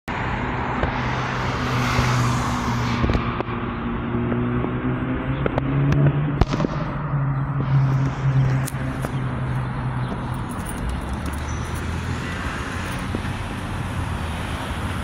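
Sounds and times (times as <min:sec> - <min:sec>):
car passing: 0:00.1 - 0:15.0
vehicle engine hum: 0:00.1 - 0:15.0.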